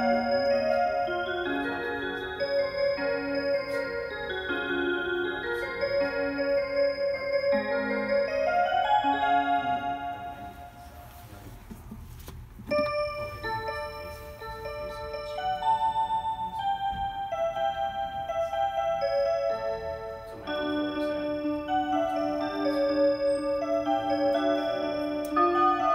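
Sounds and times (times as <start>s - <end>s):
chime clock melody: 0.0s - 11.2s, 12.7s - 25.9s.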